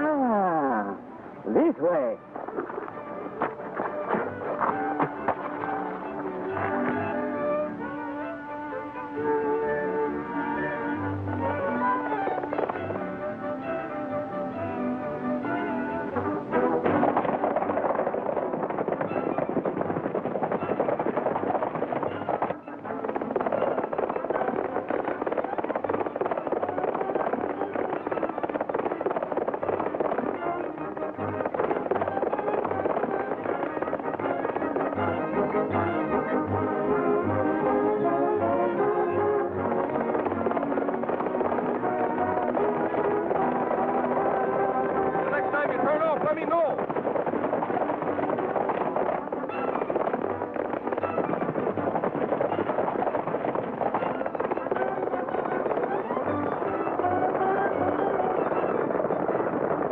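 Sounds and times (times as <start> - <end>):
galloping horses' hooves: 0.0 - 59.9
orchestral chase music with brass: 0.9 - 59.9.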